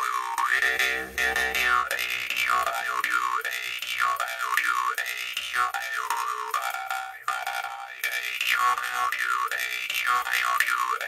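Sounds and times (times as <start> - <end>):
jaw harp twanging with wah overtones: 0.4 - 5.1.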